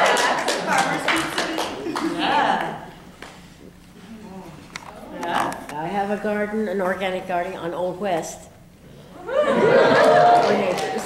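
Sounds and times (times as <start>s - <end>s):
group clapping: 0.0s - 3.4s, 9.7s - 11.0s.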